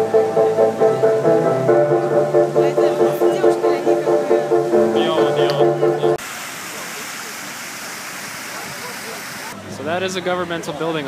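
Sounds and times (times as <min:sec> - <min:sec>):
dance music: 0:00.0 - 0:06.2
fountain water splashing: 0:00.0 - 0:11.0.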